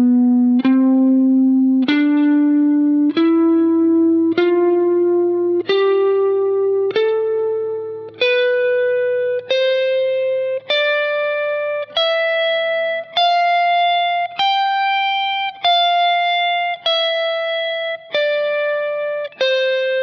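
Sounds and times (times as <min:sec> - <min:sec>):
electric guitar playing scale: 0:00.0 - 0:20.0.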